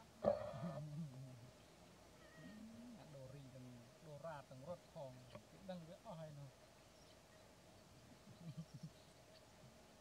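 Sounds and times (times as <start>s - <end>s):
young monkeys calling: 2.1s - 3.1s.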